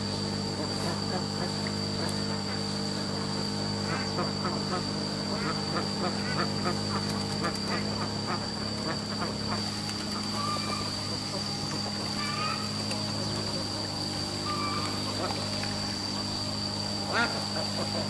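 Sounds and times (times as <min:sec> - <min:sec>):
steady background hum: 0:00.0 - 0:18.0
ducks quacking: 0:00.6 - 0:02.8, 0:03.8 - 0:16.4, 0:17.0 - 0:18.0.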